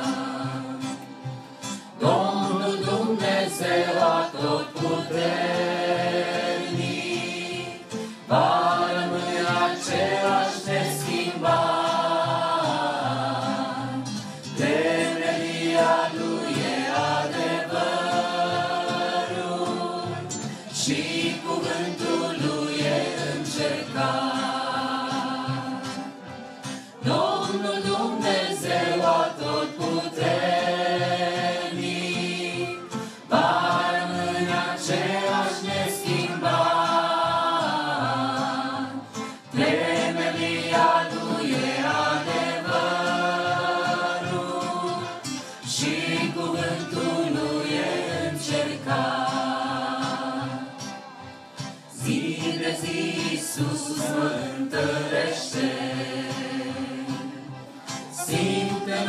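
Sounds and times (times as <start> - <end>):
vocal group singing in harmony: 0.0 - 59.0.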